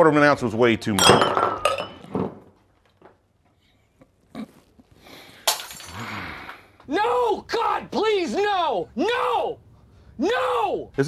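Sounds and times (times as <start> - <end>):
glass knocked over on wood: 1.0 - 2.5, 5.4 - 6.0.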